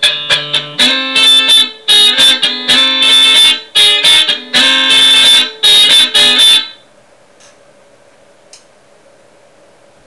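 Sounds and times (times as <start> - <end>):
electric guitar chord stabs: 0.0 - 6.8
small click: 7.4 - 7.6, 8.5 - 8.7.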